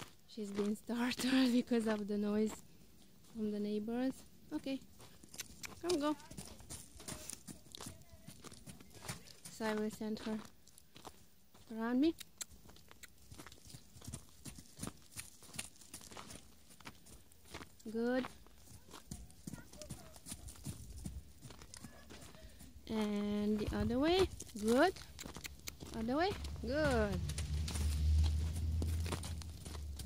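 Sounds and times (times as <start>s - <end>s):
hoofbeats on snow: 0.0s - 30.0s
horse hooves on frozen ground: 0.0s - 30.0s.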